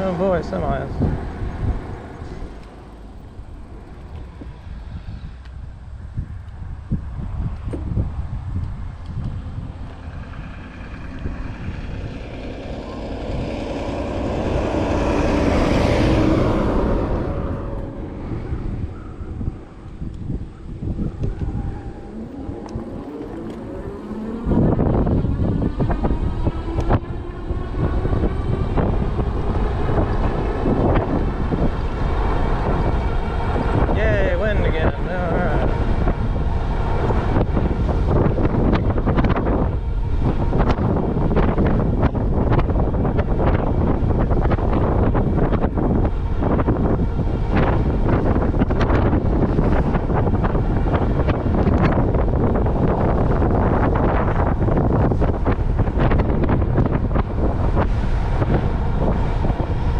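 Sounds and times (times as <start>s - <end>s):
motor vehicle passing: 0.0s - 59.9s
wind rumbling on microphone: 0.0s - 59.9s.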